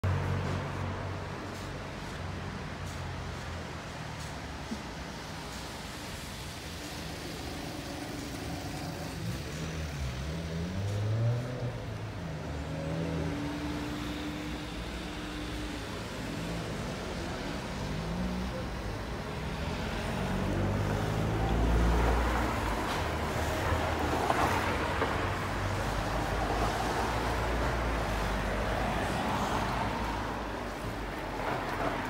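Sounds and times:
car engines passing by: 0:00.0 - 0:32.0.

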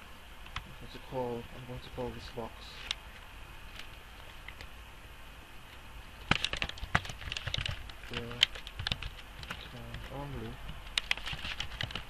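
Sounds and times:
typing on computer keyboard: 0:06.3 - 0:12.0.

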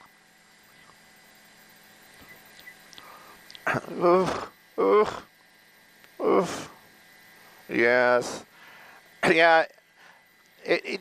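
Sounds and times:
faint steady hum: 0:00.0 - 0:11.0
mouth sounds: 0:03.0 - 0:05.3
man laughing: 0:03.7 - 0:05.3.

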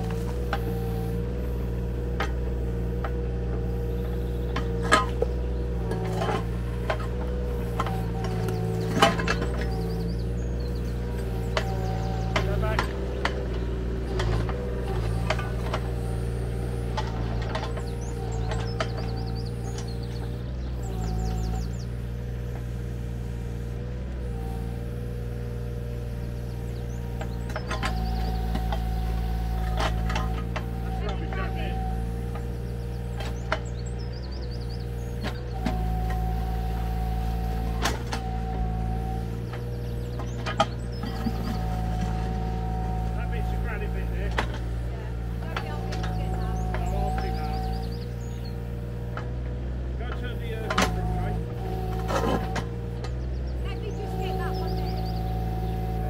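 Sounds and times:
diesel engine running: 0:00.0 - 0:56.0
hydraulic whine: 0:00.0 - 0:56.0.

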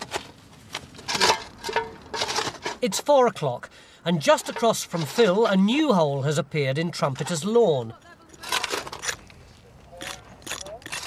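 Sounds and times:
digging tools striking soil: 0:10.0 - 0:11.0.

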